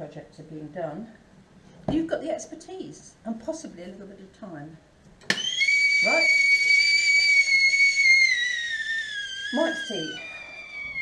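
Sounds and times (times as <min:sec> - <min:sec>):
high steady whistling tone: 0:05.3 - 0:11.0.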